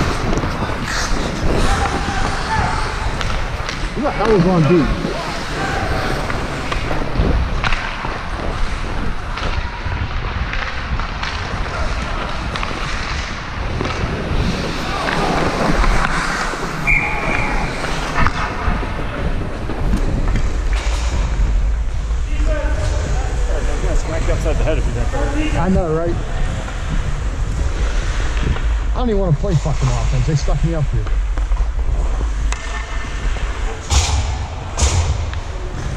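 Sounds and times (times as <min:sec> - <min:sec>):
wind buffeting microphone: 0:00.0 - 0:15.8
skates scraping on ice: 0:00.0 - 0:33.9.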